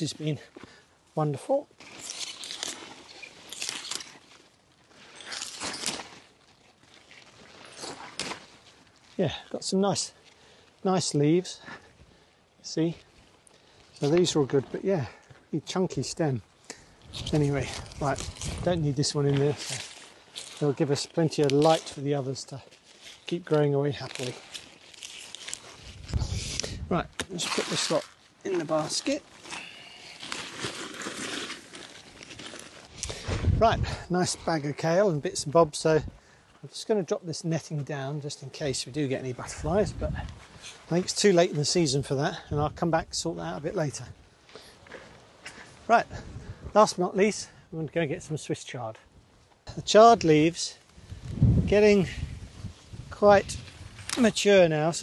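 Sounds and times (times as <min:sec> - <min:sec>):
leaves rustling as snapped off: 0:01.8 - 0:10.4, 0:16.6 - 0:34.7, 0:49.9 - 0:55.0.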